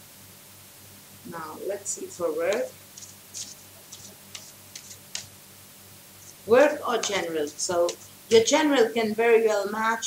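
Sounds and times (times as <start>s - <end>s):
faint steady hum: 0.0s - 10.0s
cards shuffled by hand: 2.5s - 5.3s.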